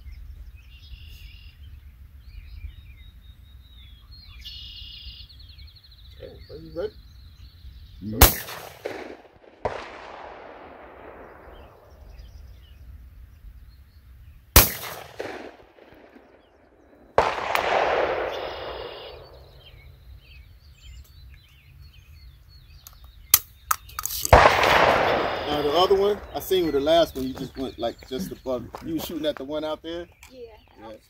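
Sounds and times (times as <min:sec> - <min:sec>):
handgun shots: 0:08.2 - 0:11.8, 0:14.6 - 0:15.9, 0:17.2 - 0:19.5, 0:23.4 - 0:26.4.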